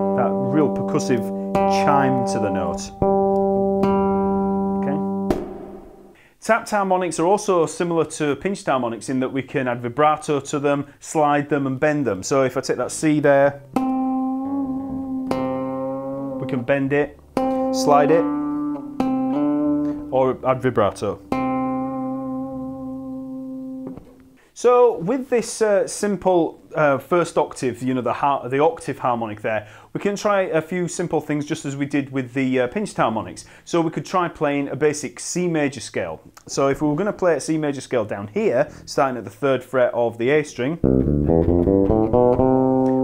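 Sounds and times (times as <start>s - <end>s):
bass guitar harmonic ringing: 0.0s - 6.2s, 13.6s - 24.0s, 40.8s - 43.0s.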